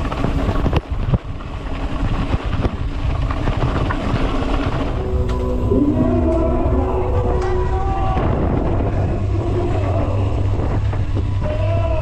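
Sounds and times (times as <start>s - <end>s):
wind rumble on microphone: 0.0s - 12.0s
faint music: 4.9s - 12.0s
loudspeaker voice: 5.5s - 10.5s.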